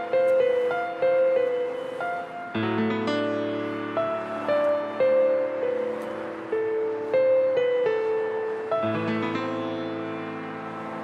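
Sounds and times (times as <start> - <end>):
slow piano notes: 0.0 - 11.0.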